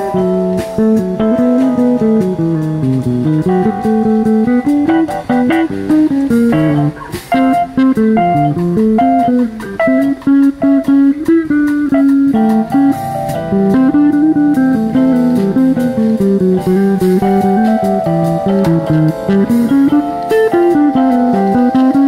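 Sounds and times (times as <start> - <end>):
drums and cymbals: 0.0 - 22.0
electric guitar melody: 0.0 - 22.0.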